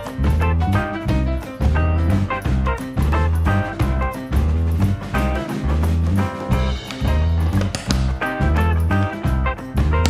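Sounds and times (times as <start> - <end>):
upbeat swing music: 0.0 - 10.0.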